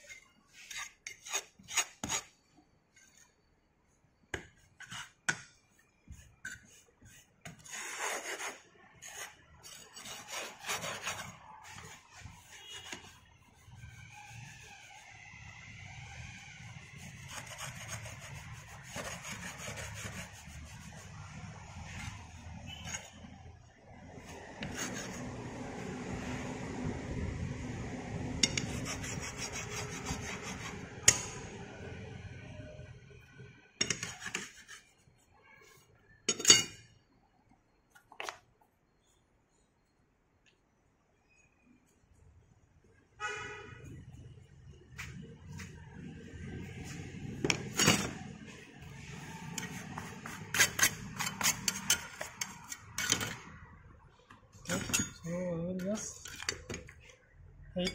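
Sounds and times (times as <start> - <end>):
metal bar scraping sand: 49.4 - 53.4.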